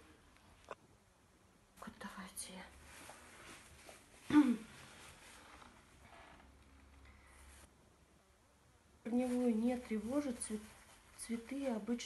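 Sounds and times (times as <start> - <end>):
soft rustling of potting soil: 2.4 - 7.7, 9.0 - 12.0.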